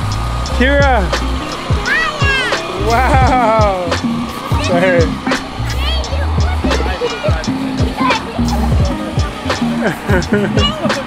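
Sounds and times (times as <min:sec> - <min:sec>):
song with vocals bass and beat: 0:00.0 - 0:11.0.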